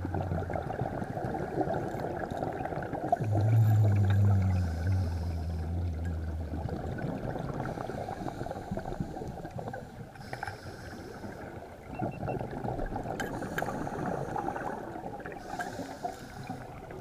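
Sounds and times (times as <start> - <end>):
muffled underwater rumble: 0.0 - 17.0
hiss: 10.2 - 11.4, 15.4 - 16.6
clicks and crackles: 13.0 - 13.8.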